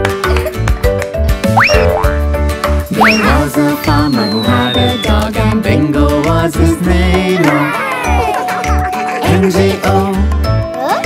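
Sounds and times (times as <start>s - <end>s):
bouncy children's song music: 0.0s - 11.0s
cartoon jump sound effect: 1.5s - 2.2s, 2.9s - 3.5s.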